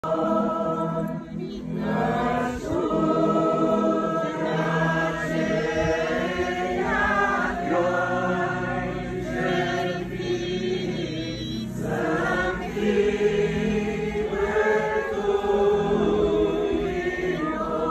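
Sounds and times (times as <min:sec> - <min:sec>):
choir chanting unaccompanied: 0:00.0 - 0:17.9.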